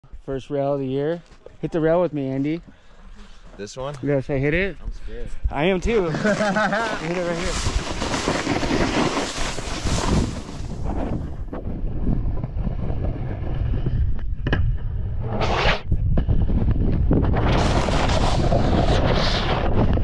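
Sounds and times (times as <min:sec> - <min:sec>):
snowboard scraping over snow: 0:05.6 - 0:14.0, 0:16.8 - 0:20.0
wind buffeting microphone: 0:07.4 - 0:20.0.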